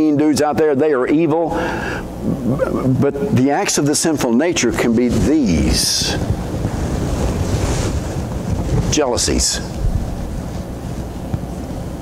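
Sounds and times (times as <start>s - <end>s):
person speaking: 2.2s - 6.3s
rushing noise with low rumble: 4.6s - 12.0s.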